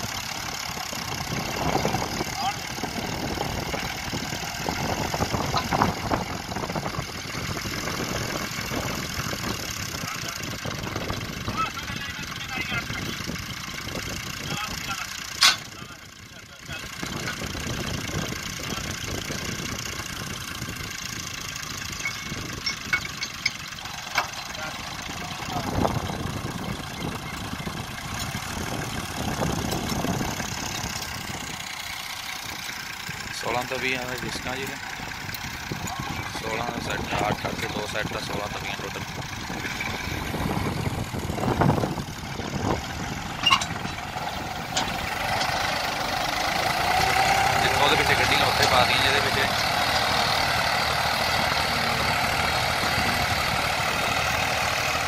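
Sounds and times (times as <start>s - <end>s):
tractor diesel engine idling: 0.0s - 55.0s.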